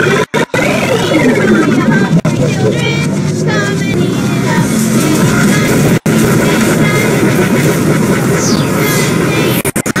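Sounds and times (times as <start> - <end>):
children's song: 0.0 - 10.0.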